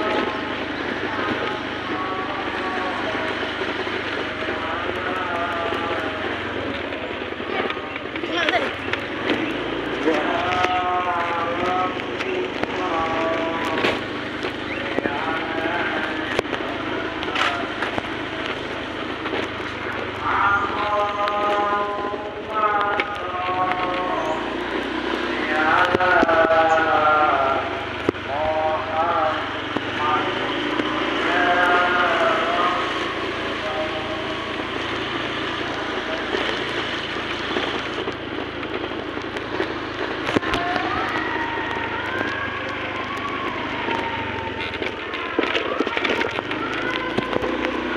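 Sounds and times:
person's voice: 0:00.0 - 0:38.2, 0:38.8 - 0:47.9
motorcycle engine running: 0:00.0 - 0:47.9
road and wind noise: 0:00.0 - 0:47.9.

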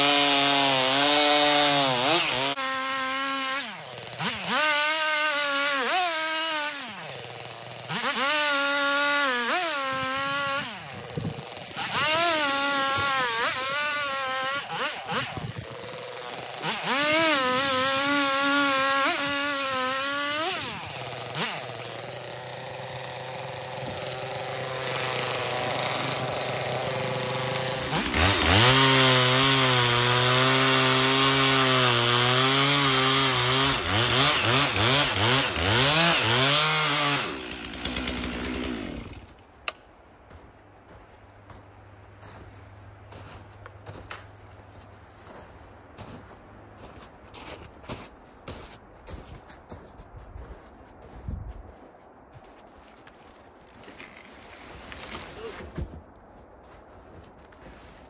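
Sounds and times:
chainsaw cutting logs: 0:00.0 - 0:39.9.

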